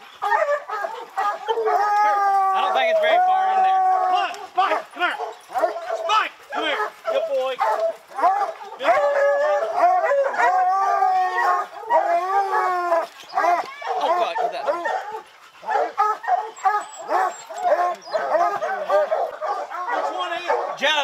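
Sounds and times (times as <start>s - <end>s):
hounds baying and barking: 0.0s - 21.0s.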